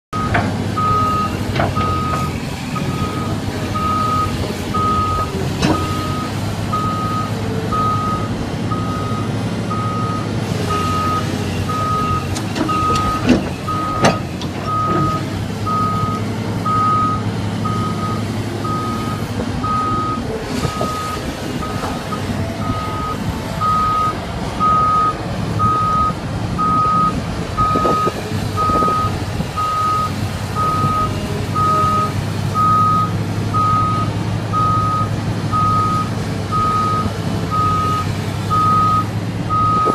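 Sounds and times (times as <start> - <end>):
excavator diesel engine under load: 0.1 - 39.9.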